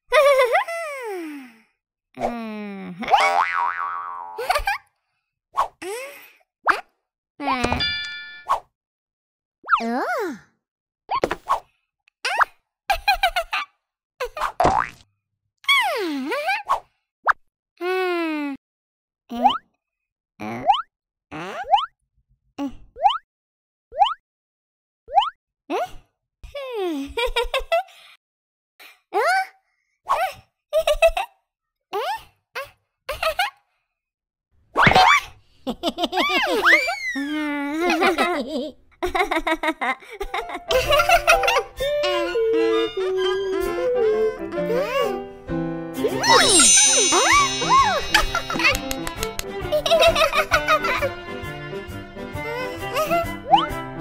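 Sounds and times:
cartoon boing pitch glides: 0:46.2 - 0:49.0.

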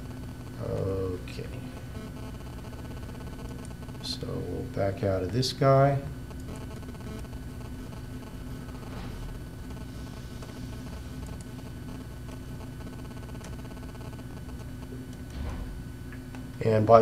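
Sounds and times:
low hum of room and computer: 0:00.0 - 0:17.0.

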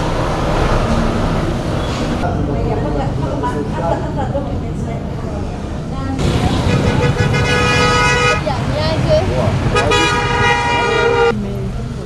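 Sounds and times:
traffic rumble: 0:00.0 - 0:12.0
voices: 0:02.2 - 0:12.0
vehicle horn blasts: 0:06.6 - 0:08.5, 0:09.7 - 0:11.4.

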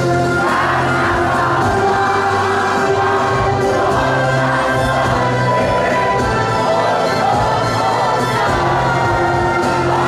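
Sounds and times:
backing music: 0:00.0 - 0:10.0
group voices singing choir style: 0:00.0 - 0:10.0.

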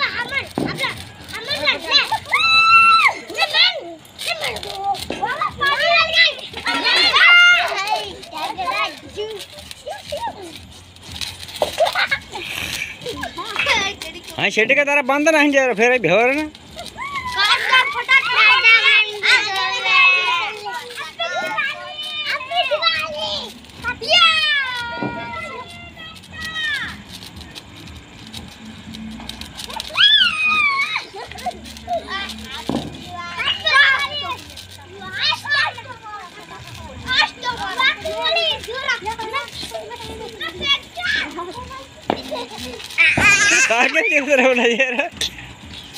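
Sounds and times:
children shouting while playing: 0:00.0 - 0:10.6, 0:16.7 - 0:27.0, 0:29.6 - 0:44.3.

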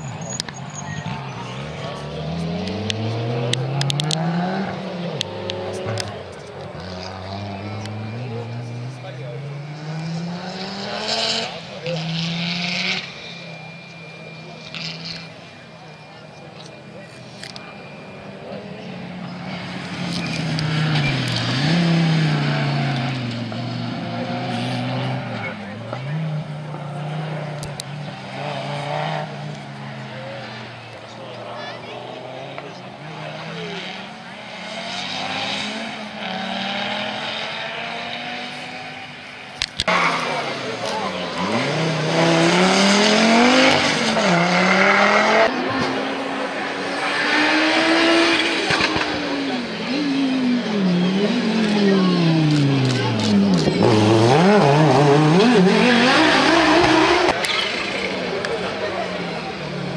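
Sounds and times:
rally car engines revving: 0:00.0 - 0:59.9
turbocharged engine revving hard: 0:01.0 - 0:13.7, 0:19.5 - 0:30.9, 0:32.0 - 0:39.1, 0:39.9 - 0:59.9.

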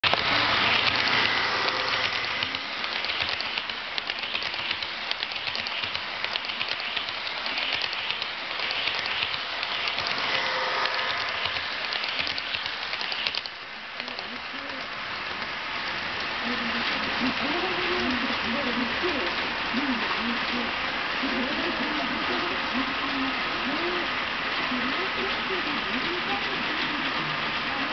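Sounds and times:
model train wheels clattering on track: 0:00.0 - 0:15.5
faint motor whine: 0:00.1 - 0:14.9.

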